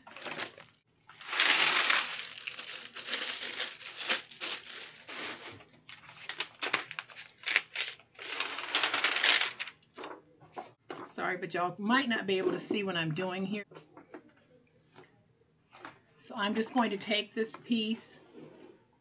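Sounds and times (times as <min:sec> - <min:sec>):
adhesive film peeled crackling: 0:00.0 - 0:09.7.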